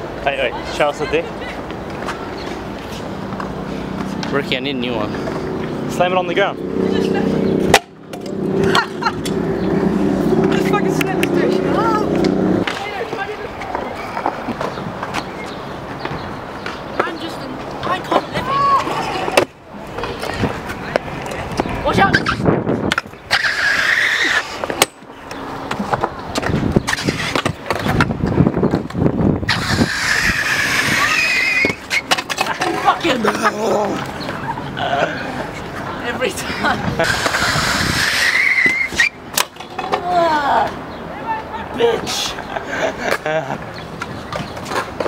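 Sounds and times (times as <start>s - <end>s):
scooter wheels rolling on concrete: 0.0s - 45.0s.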